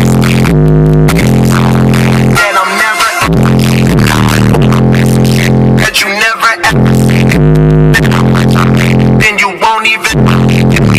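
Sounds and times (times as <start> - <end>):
hip-hop track with synth bass: 0.0 - 10.9
short vocal phrases: 1.2 - 10.9.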